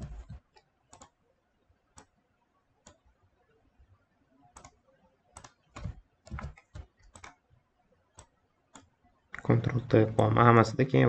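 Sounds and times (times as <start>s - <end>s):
keyboard keys clicking: 5.4s - 7.4s.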